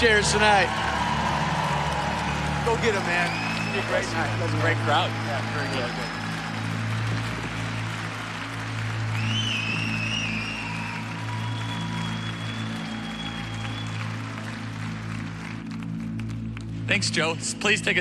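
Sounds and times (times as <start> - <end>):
high cheer: 0.0 - 15.6
large audience applauding: 0.0 - 18.0.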